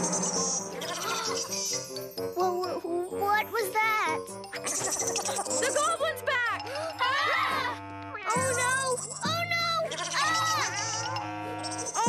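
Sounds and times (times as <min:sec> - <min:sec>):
background music: 0:00.0 - 0:12.0
cartoon cats meowing: 0:00.8 - 0:01.7, 0:08.3 - 0:11.2.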